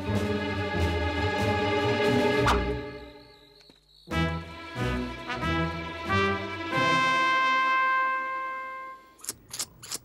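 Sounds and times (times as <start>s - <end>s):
cartoon brass music: 2.4s - 2.9s, 4.1s - 9.0s.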